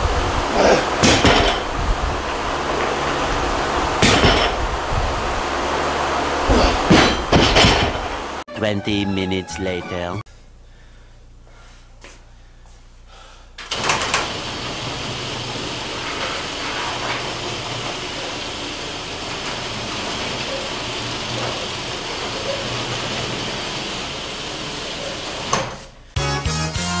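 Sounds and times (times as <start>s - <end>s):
loud pitched sound: 8.5s - 10.2s
garage door opener rumble: 13.6s - 25.6s
garage door clatter: 13.7s - 25.8s.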